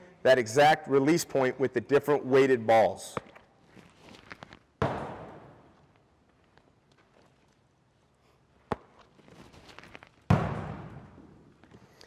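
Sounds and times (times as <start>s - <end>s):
baseball smack echoing: 4.8s - 5.7s, 10.3s - 11.2s.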